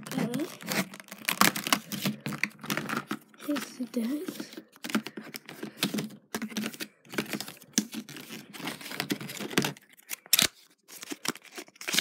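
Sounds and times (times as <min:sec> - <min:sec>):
plastic and card packaging knocking: 0:00.0 - 0:09.8.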